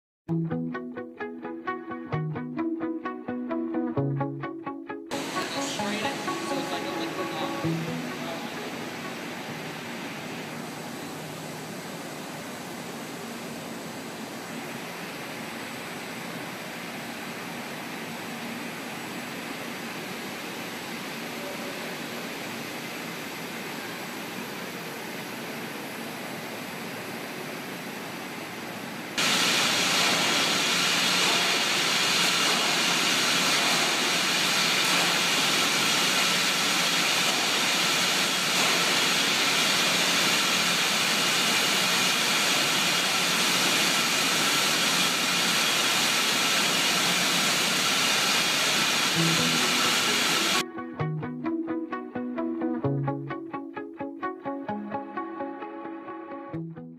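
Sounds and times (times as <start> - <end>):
bottling line conveyors running: 5.1 - 12.4, 29.2 - 50.6
machinery hum and hiss: 5.1 - 50.6.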